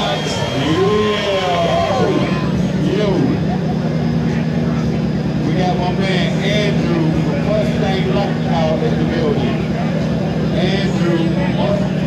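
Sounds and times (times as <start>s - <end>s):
car engine idling: 0.0s - 12.0s
crowd voices: 0.0s - 12.0s.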